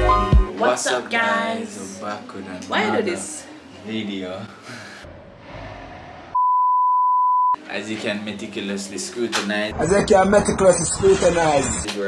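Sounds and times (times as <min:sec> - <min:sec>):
censor bleep: 0:06.4 - 0:07.6.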